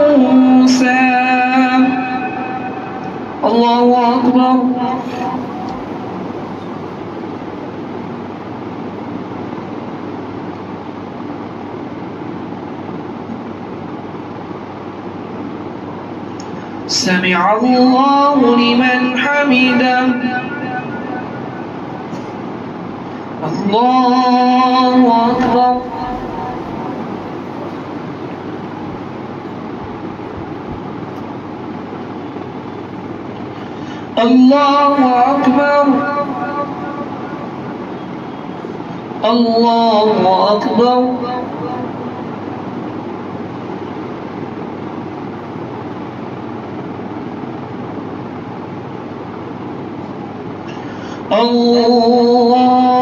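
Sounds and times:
sound system hiss: 0.0 - 53.0.

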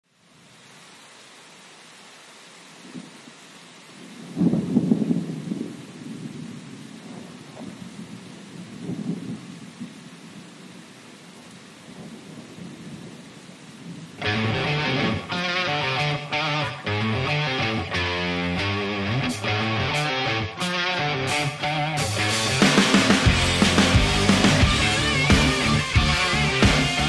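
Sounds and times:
rain hiss: 0.0 - 27.0
rolling thunder: 4.0 - 10.8.

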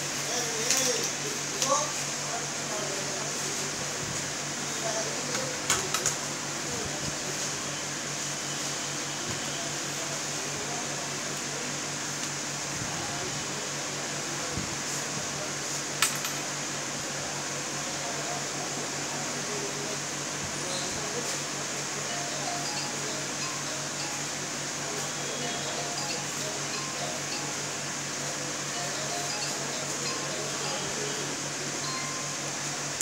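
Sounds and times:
steady background hum: 0.0 - 33.0.

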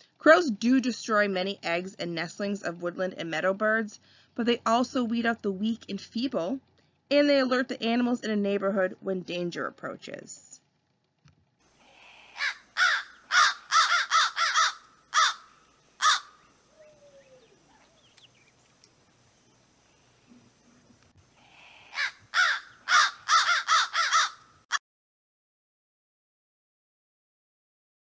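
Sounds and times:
crow cawing: 12.3 - 16.5, 21.5 - 24.8.

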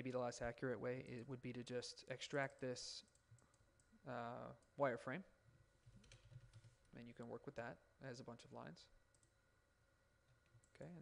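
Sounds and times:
computer mouse clicks: 6.0 - 6.8, 9.1 - 9.3.

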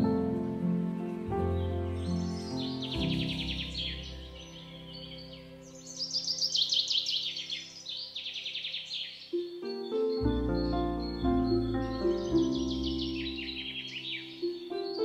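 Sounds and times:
birds chirping: 0.0 - 15.0
music of held chords: 0.0 - 15.0.

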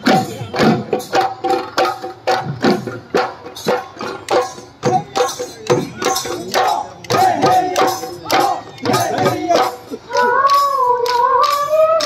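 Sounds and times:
drums in a driving rhythm: 0.0 - 12.0.

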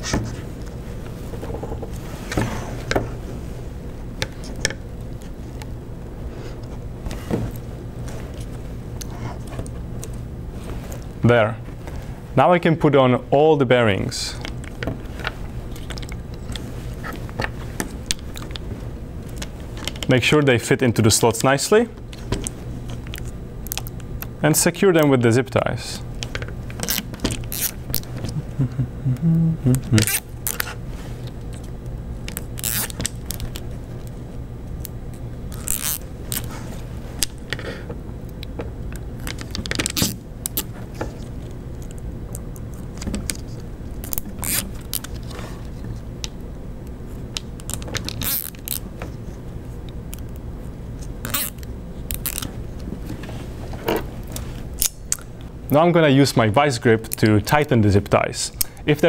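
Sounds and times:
low steady hum: 0.0 - 59.0
zip ties ratcheting: 29.9 - 30.6, 32.3 - 33.5, 35.5 - 36.5, 44.0 - 45.2, 47.6 - 48.8, 51.2 - 52.5.

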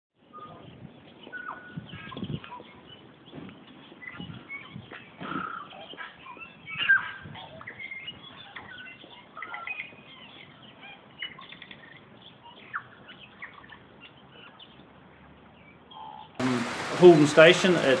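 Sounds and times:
birds chirping: 0.2 - 18.0.

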